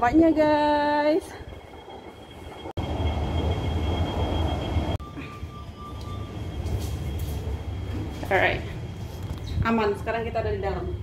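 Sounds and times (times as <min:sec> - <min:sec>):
steady tone: 0:00.0 - 0:08.7
lift low rumble and hum: 0:00.0 - 0:11.0.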